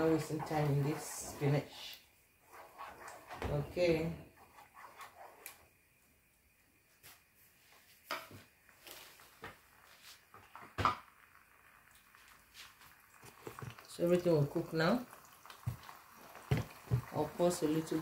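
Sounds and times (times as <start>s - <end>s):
wooden spoon stirring in a pot: 0.0s - 5.7s, 12.0s - 18.0s.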